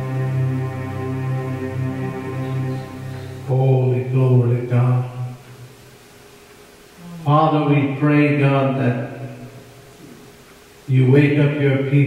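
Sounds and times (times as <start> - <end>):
electronic keyboard chord: 0.0 - 4.6
man chanting held notes: 2.4 - 5.4.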